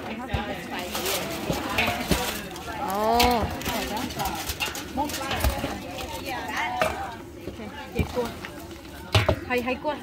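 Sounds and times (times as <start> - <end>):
utensils scraping metal bowl: 0.0 - 7.0.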